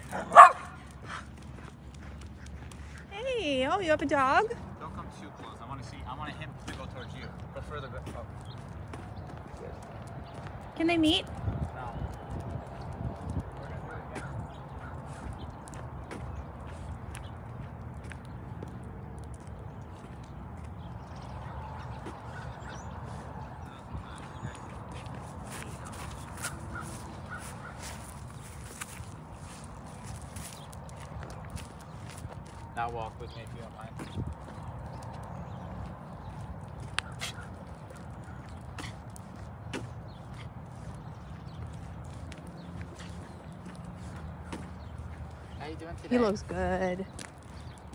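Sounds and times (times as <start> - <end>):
footsteps on asphalt: 0.0 - 47.9.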